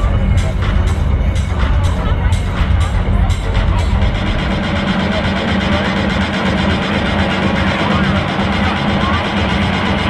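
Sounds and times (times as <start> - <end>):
crowd noise: 0.0 - 10.0
electronic music over pa: 0.0 - 10.0.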